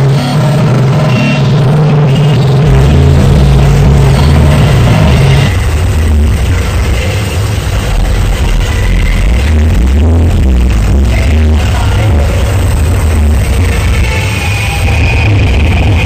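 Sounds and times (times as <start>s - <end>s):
electronic noise music: 0.0s - 16.0s
heavy low pulsing drone: 0.0s - 16.0s.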